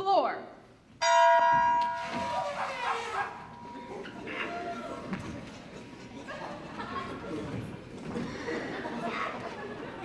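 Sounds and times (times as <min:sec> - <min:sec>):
bell-like chime ringing: 0:01.0 - 0:02.2.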